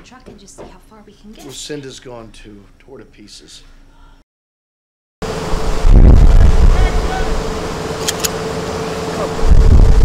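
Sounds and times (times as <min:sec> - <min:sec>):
steady hum: 0:05.2 - 0:10.0
wind-like rushing noise: 0:05.5 - 0:07.7, 0:09.4 - 0:10.0
heavy low rumble: 0:05.5 - 0:07.8, 0:09.2 - 0:10.0.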